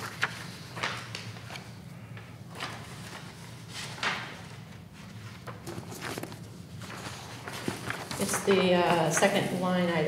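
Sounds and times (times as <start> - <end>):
paper sheets leafed through: 0.0 - 10.0.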